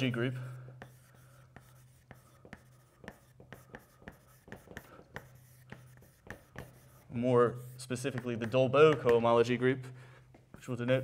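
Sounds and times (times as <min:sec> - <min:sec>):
chalk tapping and scratching: 0:00.0 - 0:09.6.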